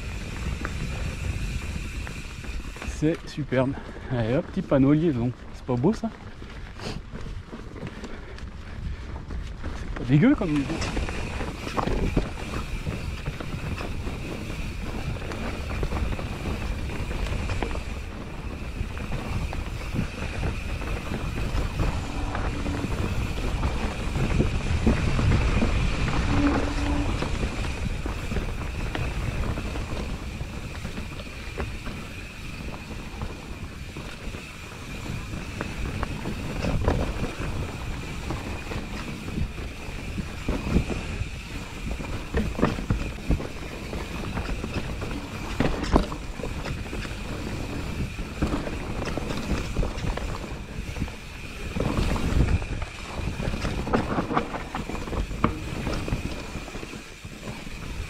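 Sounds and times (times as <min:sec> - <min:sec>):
bike rattling and knocking: 0:00.0 - 0:58.0
bike tyres on dirt and leaves: 0:00.0 - 0:58.0
wind on microphone: 0:06.5 - 0:58.0.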